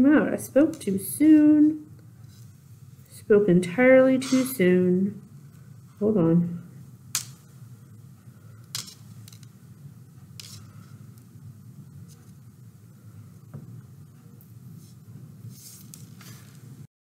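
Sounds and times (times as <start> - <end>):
steady low hum: 0.0 - 16.9.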